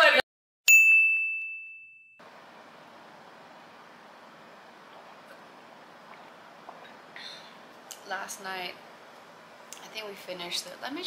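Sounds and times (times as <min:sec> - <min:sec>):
high bell-like ding: 0:00.7 - 0:02.2
faint room hiss: 0:02.2 - 0:11.0.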